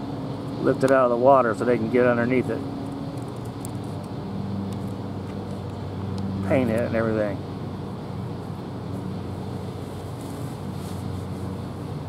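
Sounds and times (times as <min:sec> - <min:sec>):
distant machinery hum: 0:00.0 - 0:12.0.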